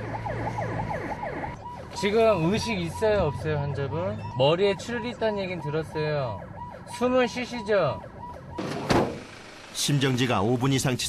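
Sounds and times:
ambulance siren yelping: 0.0s - 10.2s.

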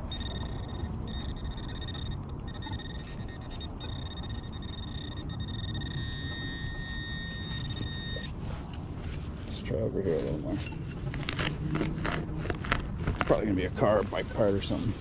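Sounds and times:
metal detector steady high tone: 0.0s - 8.7s.

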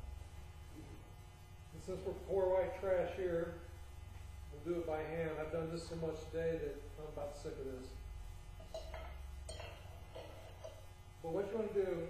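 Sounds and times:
low steady hum: 0.0s - 12.0s
faint metallic clinks: 8.6s - 10.9s.

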